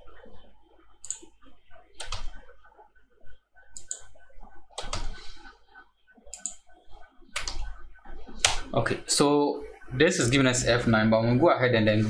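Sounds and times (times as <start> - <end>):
computer keyboard typing: 0.0 - 5.6, 6.2 - 8.8.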